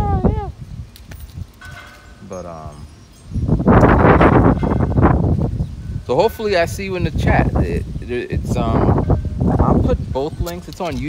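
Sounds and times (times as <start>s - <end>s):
wind gusting on microphone: 0.0s - 11.0s.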